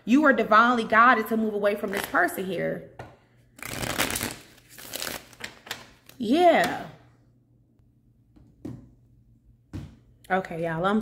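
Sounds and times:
cards being shuffled: 3.6s - 5.9s.

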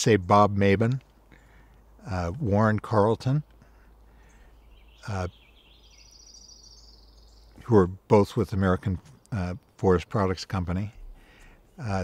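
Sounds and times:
songbird trill: 0.0s - 12.0s.

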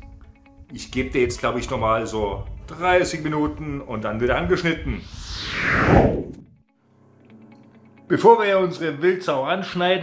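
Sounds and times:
quiet guitar music: 0.0s - 4.9s, 6.8s - 10.0s
whoosh falling in pitch: 4.9s - 6.6s.

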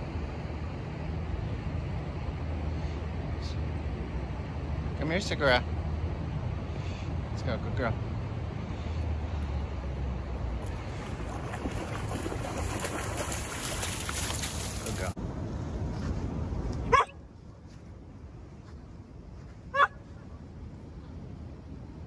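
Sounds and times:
wind: 0.0s - 22.0s
river: 8.3s - 17.2s
dog barking: 16.9s - 17.2s, 19.7s - 20.0s.

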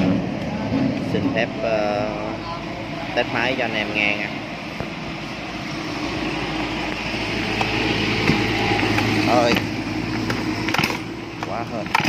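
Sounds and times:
chainsaw engine idling: 1.0s - 12.0s.

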